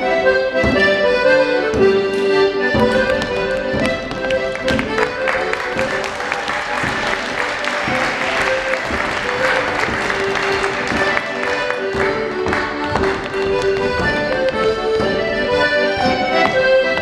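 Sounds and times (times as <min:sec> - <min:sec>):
piano accordion dance tune: 0:00.0 - 0:17.0
shoes clicking on wooden floor: 0:01.7 - 0:15.4
drumbeats: 0:02.8 - 0:15.3.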